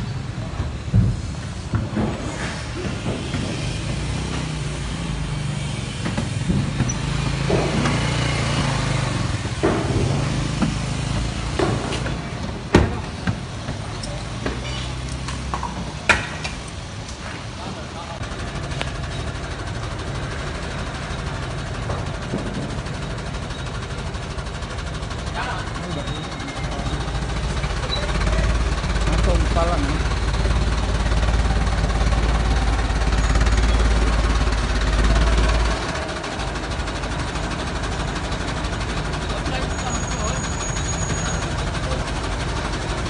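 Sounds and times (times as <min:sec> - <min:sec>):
vehicle engine idling: 0:00.0 - 0:43.0
people talking: 0:17.6 - 0:18.2, 0:25.3 - 0:30.2, 0:39.2 - 0:42.3.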